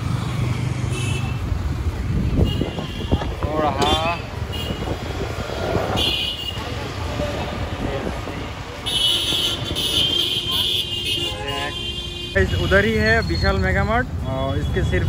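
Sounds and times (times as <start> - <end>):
traffic engines and road noise: 0.0 - 15.0
vehicle horns honking: 2.3 - 5.0, 5.9 - 6.8, 8.8 - 13.3.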